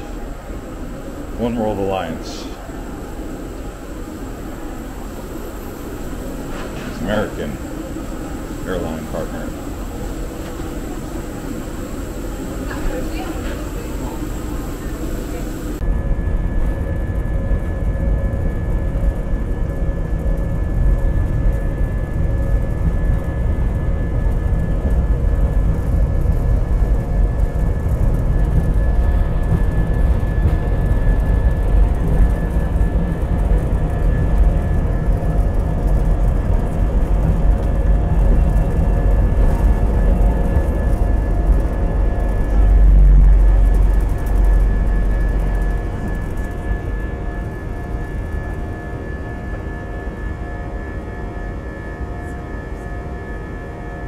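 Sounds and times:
runway rumble: 0.0s - 15.9s, 22.8s - 47.6s
high engine whine: 0.0s - 54.0s
jet engine noise: 0.0s - 54.0s.

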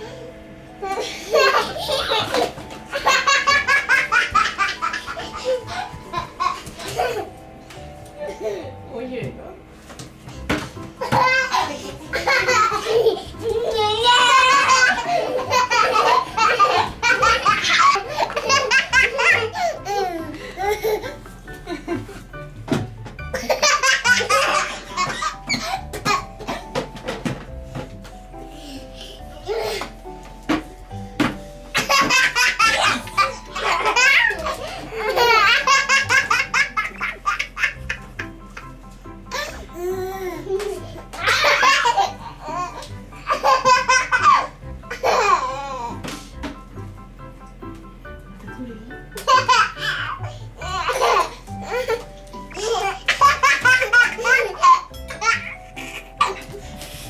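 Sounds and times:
background music: 0.0s - 57.0s
toddler laughing: 0.8s - 7.4s, 11.0s - 21.2s, 23.3s - 26.8s, 31.8s - 38.7s, 39.3s - 46.0s, 49.2s - 57.0s.

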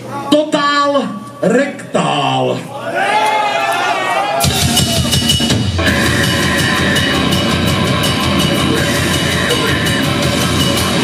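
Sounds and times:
grindcore band playing live: 4.4s - 11.0s
held vocal: 5.8s - 11.0s.

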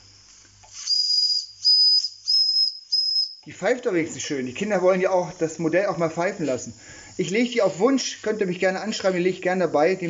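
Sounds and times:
hiss of steam: 0.0s - 1.2s.

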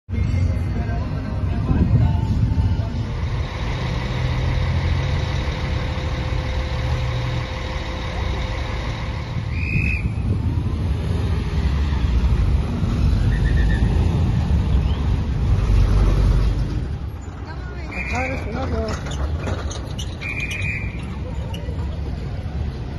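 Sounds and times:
car engines passing: 0.1s - 22.9s
heavy low rumble: 0.3s - 13.3s.

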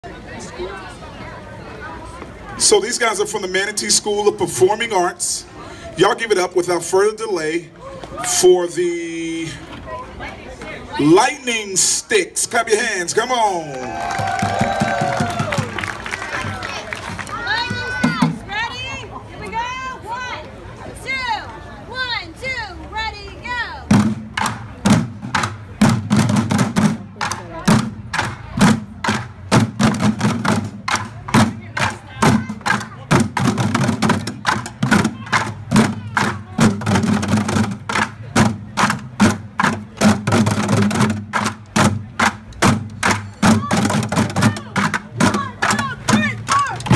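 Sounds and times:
drumsticks striking plastic buckets: 24.0s - 46.9s.

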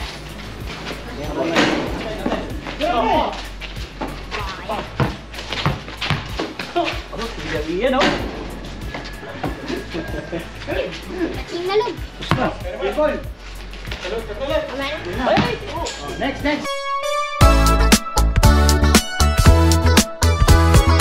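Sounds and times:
background music: 0.0s - 21.0s
men calling out: 1.1s - 3.6s
basketball bouncing on concrete: 3.9s - 6.7s, 12.2s - 12.7s, 15.2s - 15.7s.

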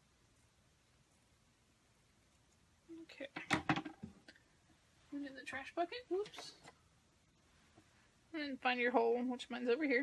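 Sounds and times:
woman speaking: 2.9s - 3.6s, 5.1s - 6.7s, 8.3s - 10.0s.

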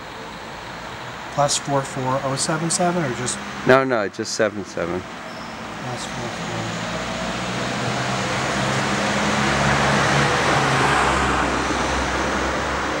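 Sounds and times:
vehicle passing: 0.0s - 13.0s.

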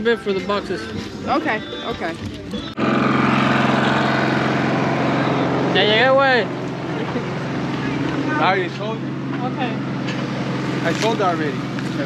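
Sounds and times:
motor droning: 1.1s - 12.0s.

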